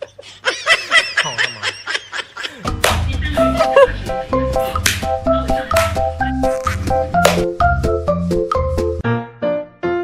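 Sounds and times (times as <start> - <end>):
person giggling: 0.0 - 6.9.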